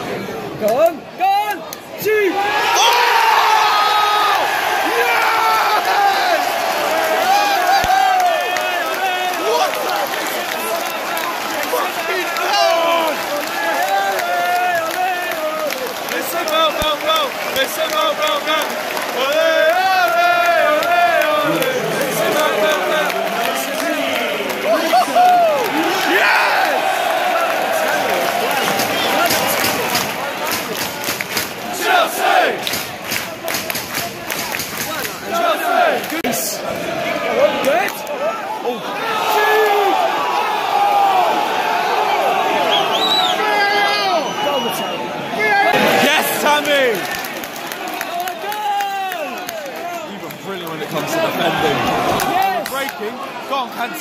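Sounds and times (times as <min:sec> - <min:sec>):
crowd cheering and chanting: 0:01.7 - 0:54.0
crowd clapping: 0:04.2 - 0:36.8, 0:45.7 - 0:53.2.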